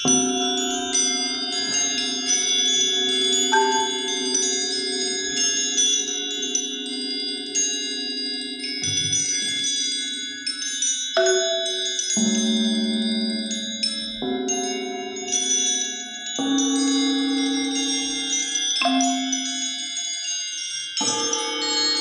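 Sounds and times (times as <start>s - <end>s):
bell-like metal percussion notes: 0.0s - 22.0s.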